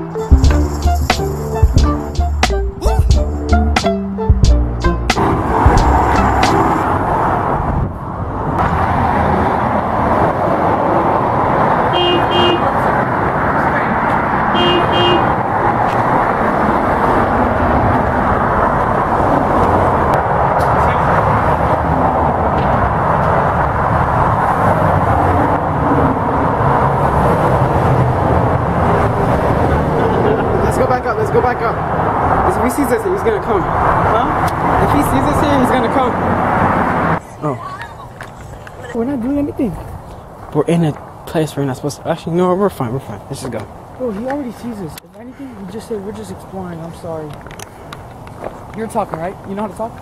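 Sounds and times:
highway traffic noise: 0.0 - 50.0
vehicle horn beeps: 11.9 - 12.8, 14.5 - 15.3.

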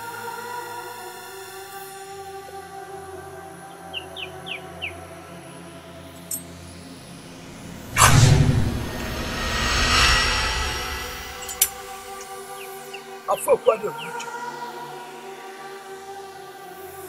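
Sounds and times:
loud whoosh: 7.2 - 12.4
low boom: 7.3 - 12.2.

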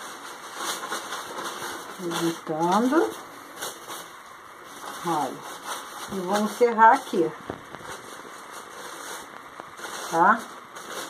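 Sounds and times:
crepe paper rustling: 0.0 - 11.0.

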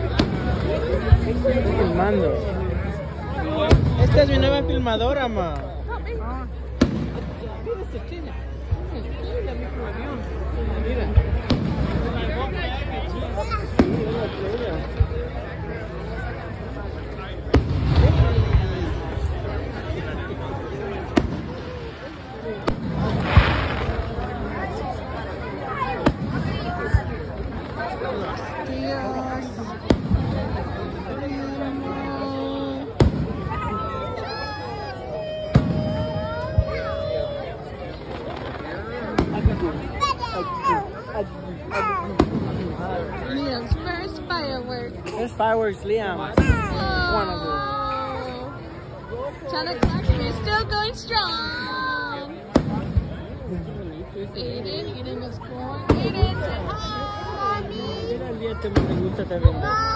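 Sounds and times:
firework bang: 0.0 - 1.6, 3.5 - 5.4, 6.8 - 7.6, 11.1 - 12.5, 13.6 - 15.3, 17.4 - 19.4, 20.9 - 28.0, 29.8 - 30.8, 33.0 - 33.9, 35.4 - 37.0, 37.9 - 40.0, 42.2 - 42.8, 46.3 - 47.2, 49.7 - 50.8, 52.5 - 53.3, 58.7 - 59.6
crowd talking: 0.0 - 59.9
fireworks bursting: 0.0 - 59.9
people's voices: 0.0 - 59.9.

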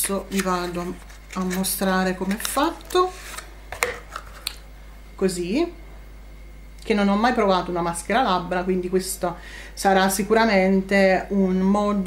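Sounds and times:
packaging rustling: 0.0 - 4.5.

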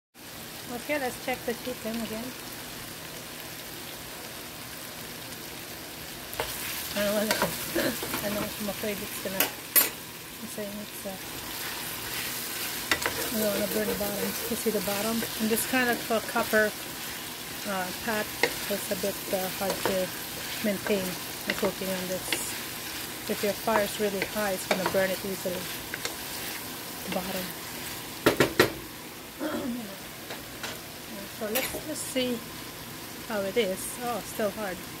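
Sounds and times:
food sizzling in a pan: 0.2 - 35.0.

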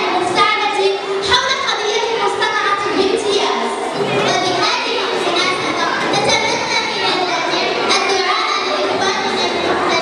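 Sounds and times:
children talking and calling: 0.0 - 10.0.

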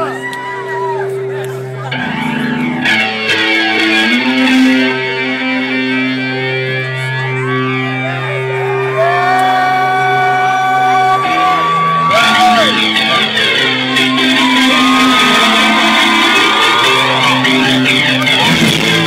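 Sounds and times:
electric guitar held notes: 0.0 - 19.0.

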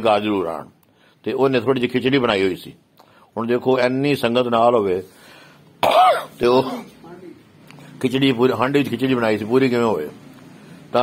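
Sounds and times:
man clearing his throat: 5.8 - 7.0.

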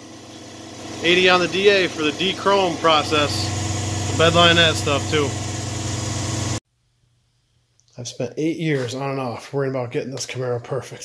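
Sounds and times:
machine humming: 0.0 - 6.6.

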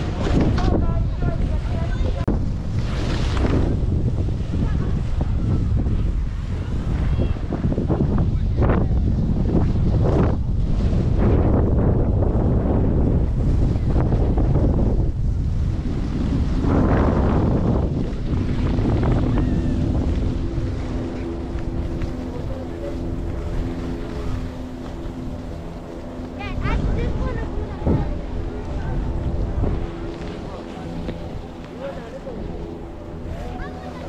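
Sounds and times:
wind buffeting microphone: 0.0 - 34.0
steady hum of even tones: 9.5 - 34.0.

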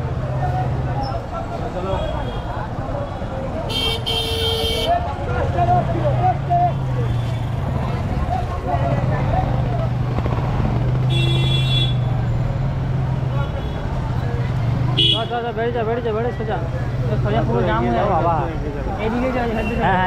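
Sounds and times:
vehicle horn honking: 3.7 - 4.9, 11.1 - 12.1, 15.0 - 15.3
motorcycle engine running: 7.6 - 13.3.

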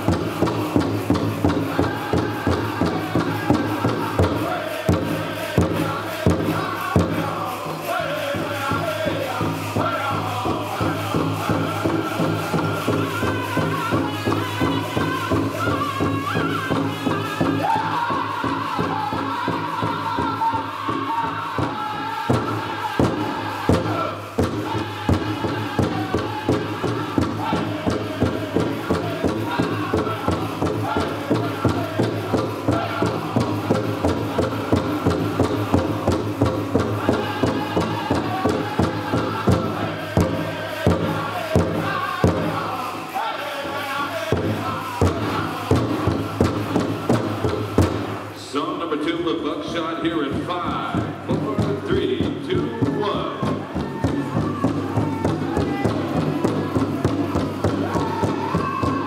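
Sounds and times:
big drum beating steadily: 0.0 - 48.4, 49.2 - 59.0
drum group singing in chorus: 0.0 - 59.0.

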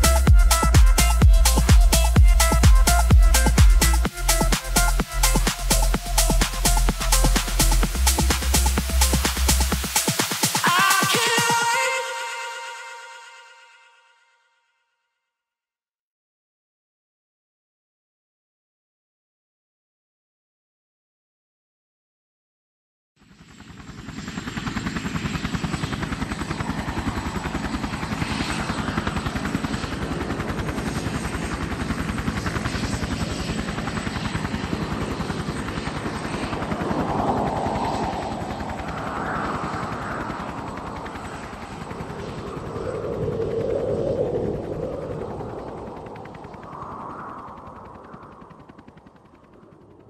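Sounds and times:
helicopter rotor chopping: 0.0 - 13.3, 23.3 - 50.0
high steady whine: 0.0 - 14.0, 33.7 - 49.6.

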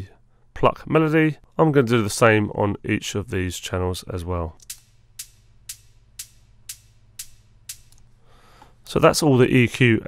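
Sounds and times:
closed hi-hat ticks: 4.6 - 8.7.

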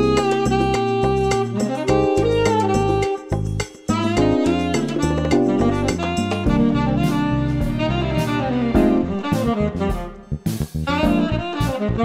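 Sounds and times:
bossa nova jazz band: 0.0 - 12.0
saxophone lead: 0.0 - 12.0.

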